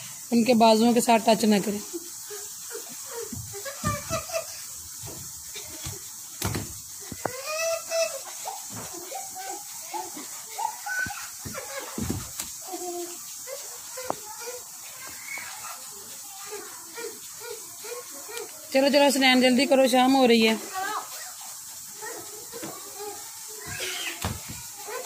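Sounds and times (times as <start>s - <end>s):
children chattering: 1.2s - 6.2s, 7.0s - 25.0s.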